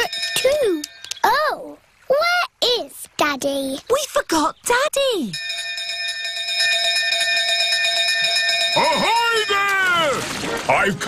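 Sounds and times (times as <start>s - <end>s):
brass bell ringing: 0.0s - 0.5s, 5.4s - 9.9s.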